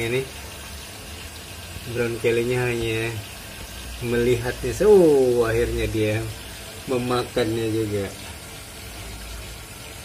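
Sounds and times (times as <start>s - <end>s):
aquarium water circulating: 0.0s - 10.0s.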